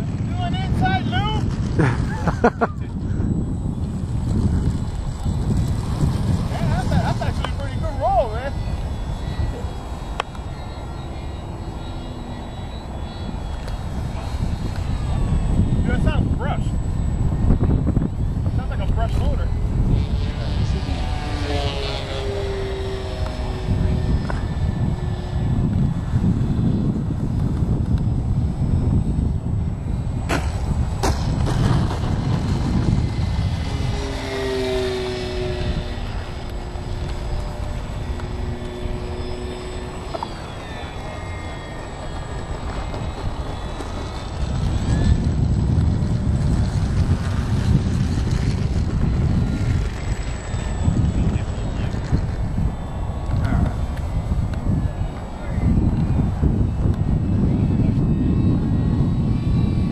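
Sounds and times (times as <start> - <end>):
model plane motor whining: 0.0 - 59.9
wind rumble on microphone: 0.0 - 59.9.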